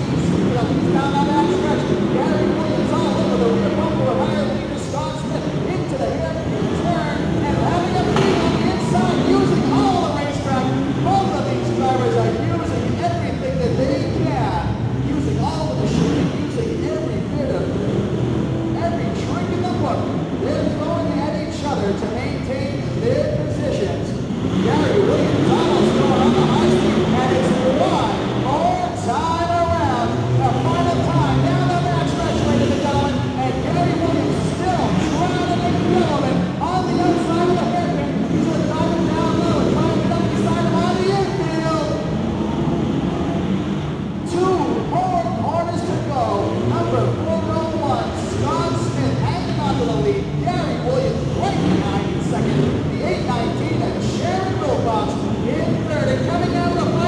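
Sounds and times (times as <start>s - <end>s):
truck engines revving: 0.0s - 57.0s.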